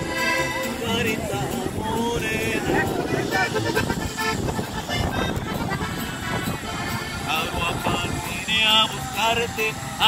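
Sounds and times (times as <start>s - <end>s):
plucked upright bass: 0.0s - 8.8s
accordion playing: 0.0s - 10.0s
guitar: 0.0s - 10.0s
people's voices: 0.0s - 10.0s.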